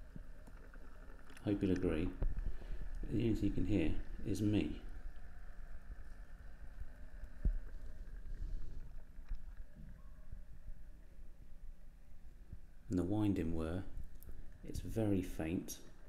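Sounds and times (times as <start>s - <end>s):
faint motor hum: 0.0s - 16.0s.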